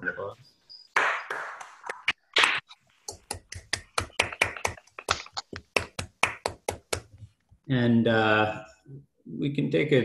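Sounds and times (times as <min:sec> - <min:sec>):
hand clapping: 0:00.9 - 0:07.2.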